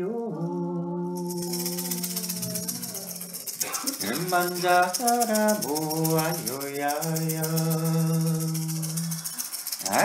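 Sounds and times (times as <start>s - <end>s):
person singing low note: 0.0s - 3.1s
fast shaken rattle: 1.2s - 10.0s.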